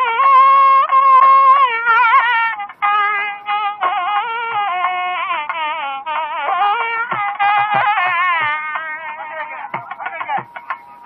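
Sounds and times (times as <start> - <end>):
double-reed pipe melody: 0.0 - 11.0.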